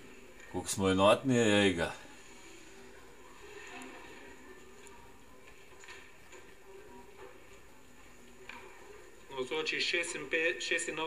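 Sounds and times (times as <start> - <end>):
faint hum through tv speaker: 0.0 - 11.0.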